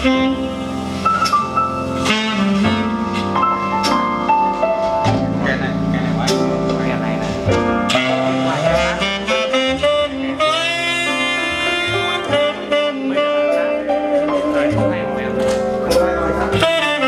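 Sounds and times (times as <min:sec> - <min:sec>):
jazz music with saxophone: 0:00.0 - 0:17.0.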